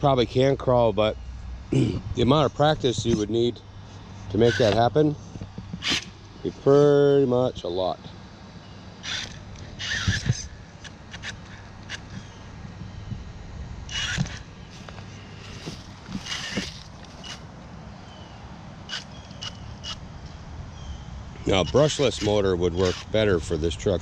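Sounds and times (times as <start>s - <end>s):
toy truck scraping on wood: 4.4s - 4.8s, 15.6s - 17.4s.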